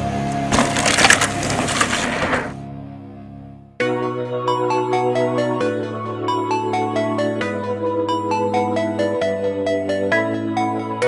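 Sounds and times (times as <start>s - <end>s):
background music: 0.0s - 11.0s
crashing splintering sound effect: 0.4s - 2.6s.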